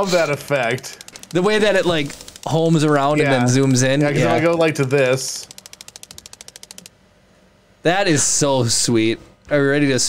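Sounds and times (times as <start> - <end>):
person speaking: 0.0 - 5.6
prize wheel ticking: 0.4 - 6.9.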